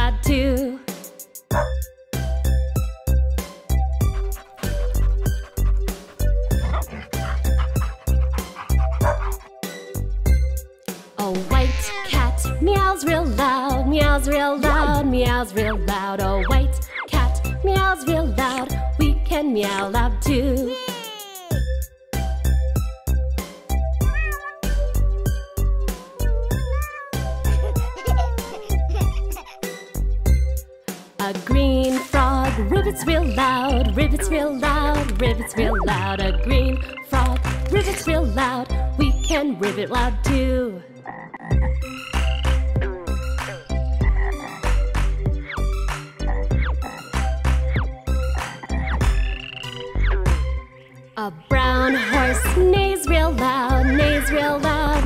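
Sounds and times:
children's song backing track: 0.0s - 9.9s, 10.9s - 40.9s, 50.2s - 55.0s
cartoon frog croaking: 11.4s - 12.3s, 33.0s - 34.1s, 35.4s - 37.2s, 41.0s - 43.2s, 44.0s - 44.8s, 48.5s - 51.0s, 53.8s - 55.0s
cat meowing: 11.4s - 12.3s, 24.0s - 28.5s.

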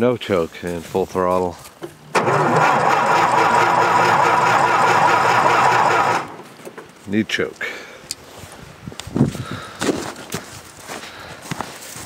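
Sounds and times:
engine cranking by starter motor: 2.0s - 6.8s.

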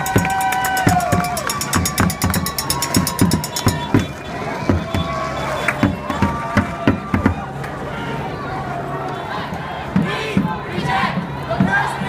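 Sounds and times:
low drum beats: 0.0s - 5.2s, 5.8s - 7.6s.

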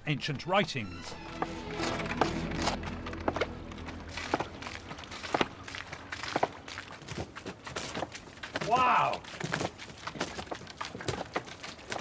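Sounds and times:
background music: 0.0s - 5.6s
water forced from spout: 3.8s - 12.0s.

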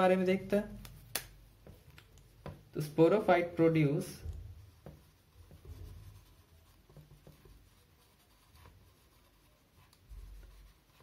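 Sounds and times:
marker writing on whiteboard: 0.8s - 11.0s.

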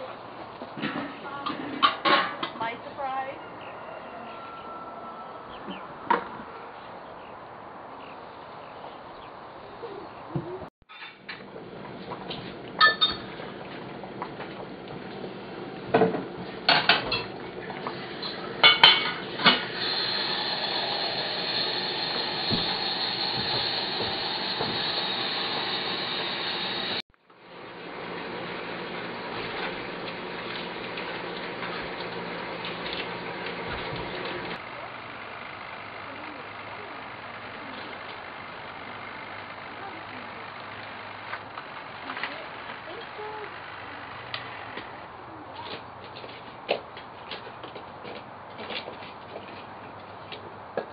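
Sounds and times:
metal pots and lids clanking: 0.8s - 2.6s, 12.8s - 13.4s, 16.7s - 17.4s, 18.2s - 19.8s
boiling water hiss: 13.4s - 34.8s.

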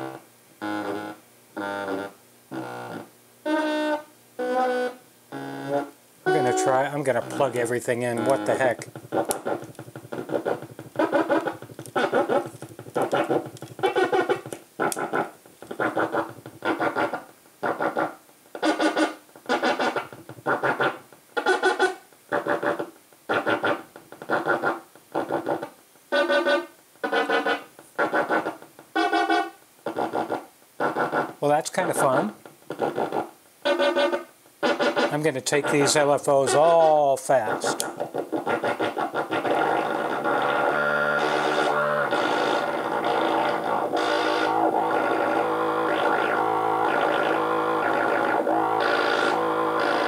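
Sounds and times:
synthesizer short pitched notes: 6.3s - 8.8s.

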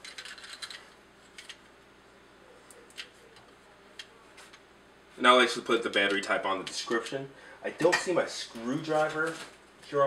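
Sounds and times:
small plastic clicks and rattles: 0.0s - 0.8s.

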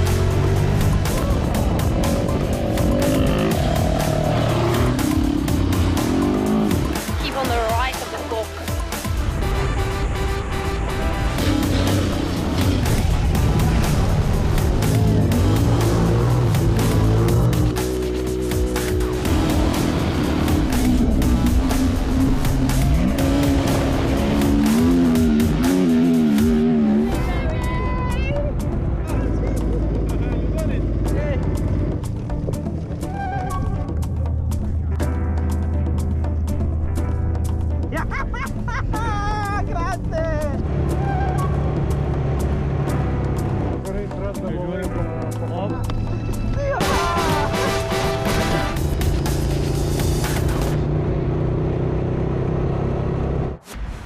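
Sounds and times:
vehicle engines revving: 0.0s - 27.7s, 28.4s - 35.0s, 40.0s - 53.7s
background music with steady beat: 0.0s - 51.0s.

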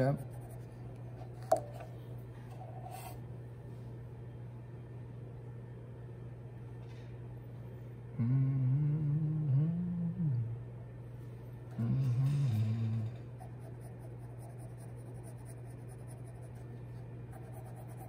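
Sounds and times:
low electrical hum: 0.0s - 18.0s
person humming: 8.1s - 10.6s, 11.7s - 13.2s.

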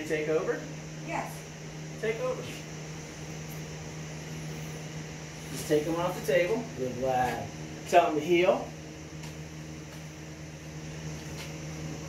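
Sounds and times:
machine drone with hiss: 0.0s - 12.0s.

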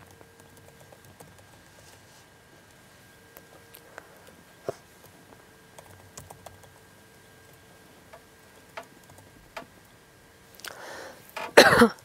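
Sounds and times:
woman clearing her throat: 11.6s - 12.0s
woman coughing: 11.6s - 12.0s.

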